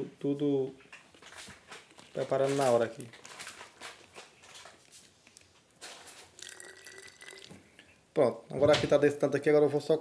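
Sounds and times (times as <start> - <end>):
liquid trickling into a bottle: 6.1 - 7.8.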